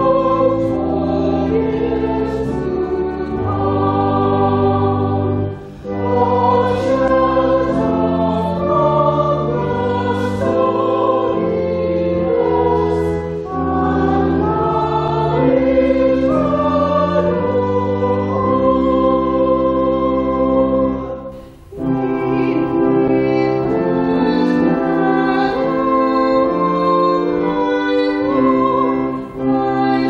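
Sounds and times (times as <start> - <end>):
church choir singing: 0.0 - 30.0.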